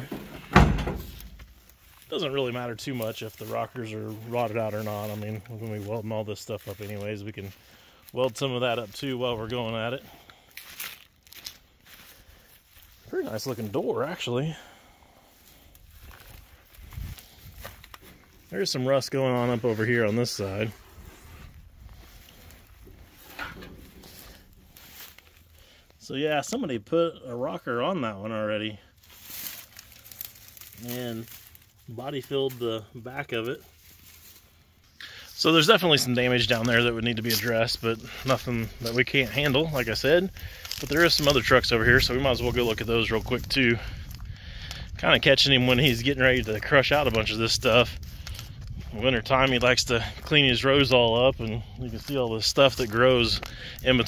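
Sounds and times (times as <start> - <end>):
footsteps in dry grass: 0.0 - 54.0
heavy steel door thump: 0.1 - 1.4.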